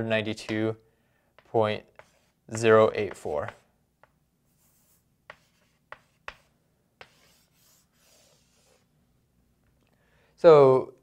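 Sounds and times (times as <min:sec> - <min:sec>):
pen stroking on surface: 0:01.4 - 0:08.9.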